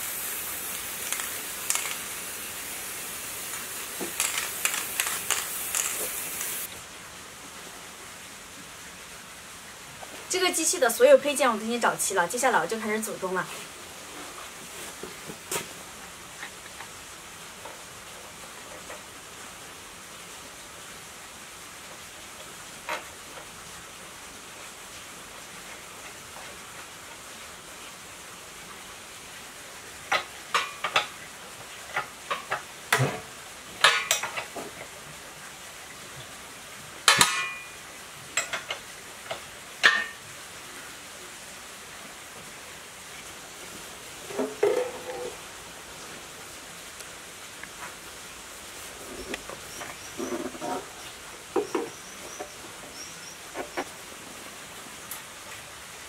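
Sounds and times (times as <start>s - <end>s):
metal engine parts clinking: 4.2s - 6.7s.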